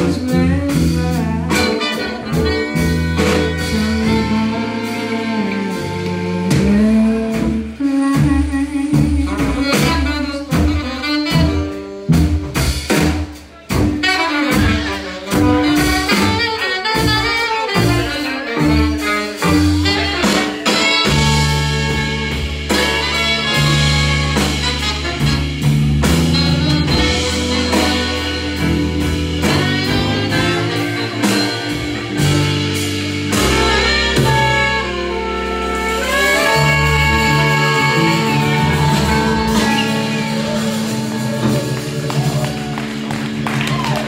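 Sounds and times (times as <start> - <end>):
saxophone trumpet and trombone: 0.0 - 8.0, 8.8 - 44.0
electric bass: 0.0 - 44.0
live band with horn section: 0.0 - 44.0
drum hits: 19.4 - 44.0
electric keyboard: 20.3 - 44.0.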